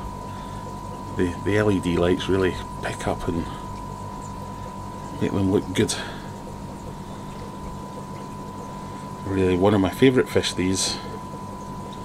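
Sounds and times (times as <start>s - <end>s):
low hum: 0.0s - 12.0s
thin steady tone: 0.0s - 12.0s
watery hiss and trickle: 0.0s - 12.0s.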